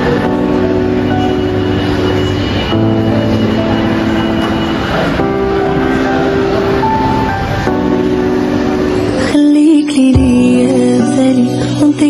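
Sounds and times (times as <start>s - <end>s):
music of sustained chords: 0.0s - 12.0s.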